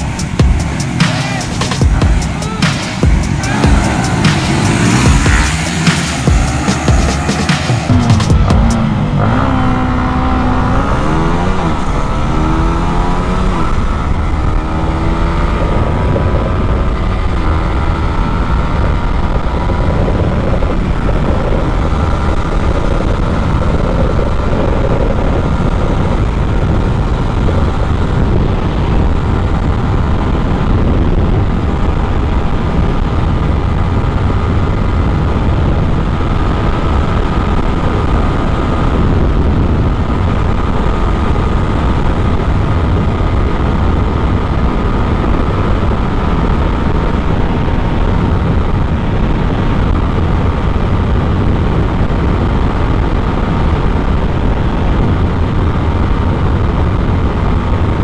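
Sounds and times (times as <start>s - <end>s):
motorcycle engine at full throttle: 0.0s - 58.0s
wind rush on microphone: 0.0s - 58.0s.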